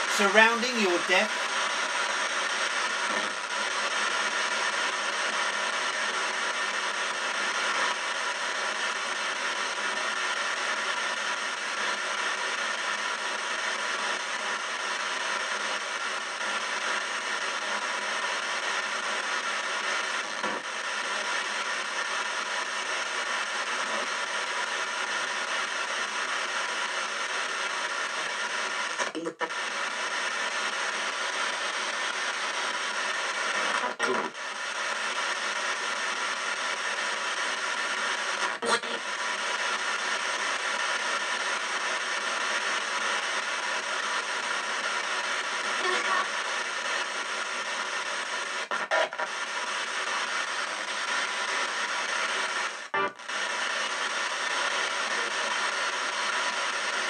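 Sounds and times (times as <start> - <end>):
radio static: 0.0 - 57.0
chopped broadcast fragments: 0.1 - 1.5.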